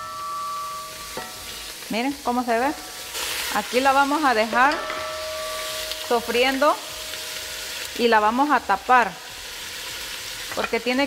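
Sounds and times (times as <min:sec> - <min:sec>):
steady high tones: 0:00.0 - 0:03.1, 0:04.3 - 0:08.4
hot oil sizzling: 0:00.0 - 0:11.0.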